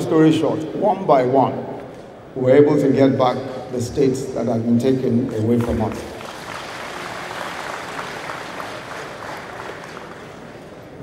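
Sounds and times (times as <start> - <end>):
audience applauding: 5.6 - 11.0.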